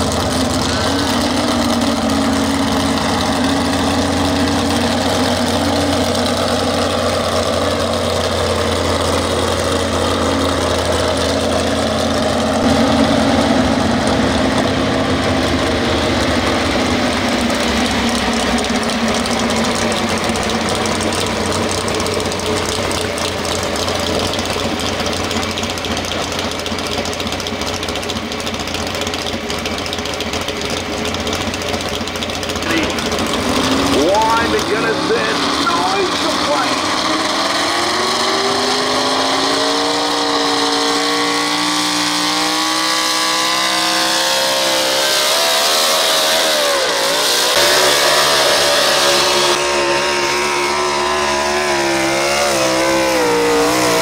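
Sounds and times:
truck engine idling loudly: 0.0s - 54.0s.

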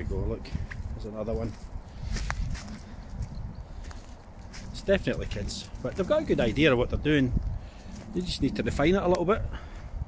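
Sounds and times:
footsteps crunching on frosty ground: 0.0s - 8.5s
wind rumble on microphone: 0.0s - 10.0s.

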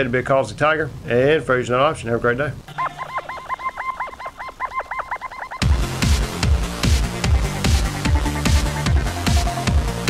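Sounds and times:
rapid honk-like calls: 2.7s - 7.0s.

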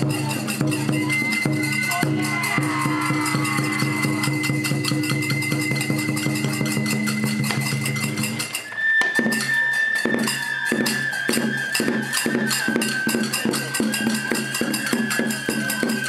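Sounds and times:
bamboo flute: 0.0s - 16.0s
drum and cymbal strokes: 0.0s - 16.0s.

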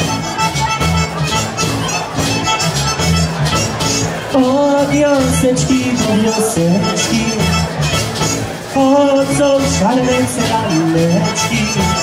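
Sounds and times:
polka band playing: 0.0s - 12.0s.

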